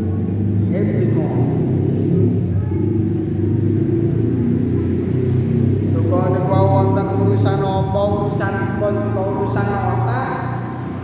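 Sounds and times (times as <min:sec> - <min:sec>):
man speaking into a microphone: 0:00.6 - 0:01.7, 0:05.9 - 0:10.8.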